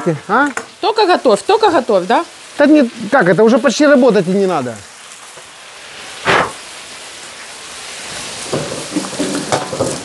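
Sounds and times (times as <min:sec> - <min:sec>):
potatoes sizzling in hot oil: 0:00.0 - 0:10.0.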